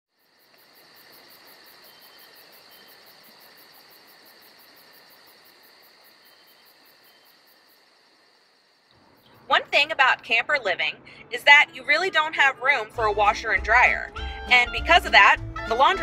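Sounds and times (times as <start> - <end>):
insect chorus chirping: 0.1 - 9.5.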